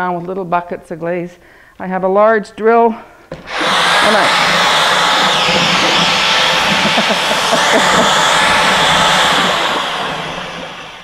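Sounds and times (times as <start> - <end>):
electric drill mixing glaze: 3.3 - 11.0.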